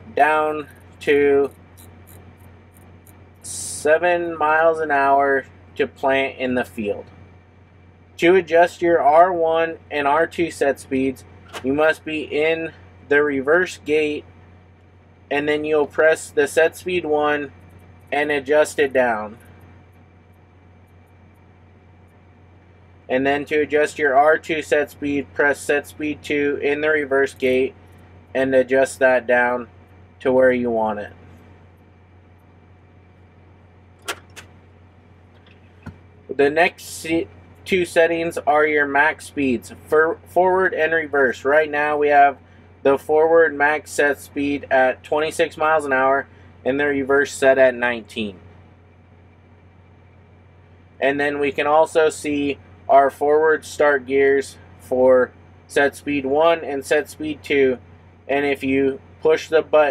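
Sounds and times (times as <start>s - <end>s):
faint low hum: 0.0s - 59.9s.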